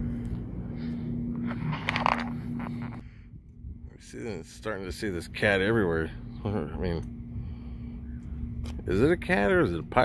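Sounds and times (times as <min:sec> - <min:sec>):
faint steady hum: 0:00.0 - 0:10.0
low outdoor rumble: 0:00.0 - 0:10.0.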